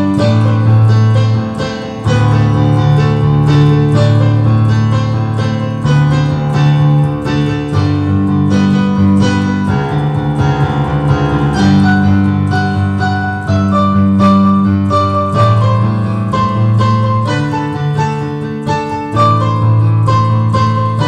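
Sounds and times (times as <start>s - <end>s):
electronic keyboard piano passage: 0.0s - 21.0s.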